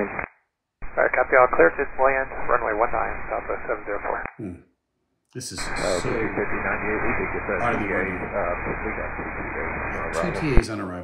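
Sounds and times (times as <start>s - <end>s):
radio hiss: 0.0s - 0.2s, 0.8s - 4.3s, 5.6s - 10.7s
voice over radio: 0.0s - 0.2s, 0.8s - 4.6s, 5.4s - 10.8s.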